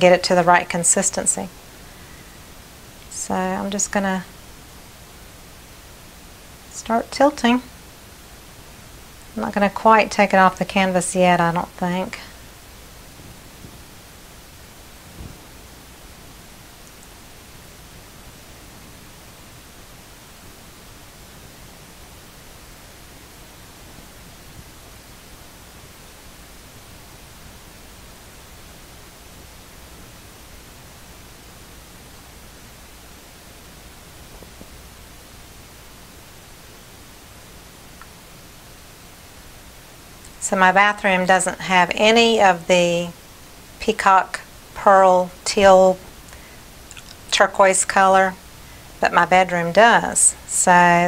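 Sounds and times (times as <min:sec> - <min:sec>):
room tone hiss: 0:00.0 - 0:51.0.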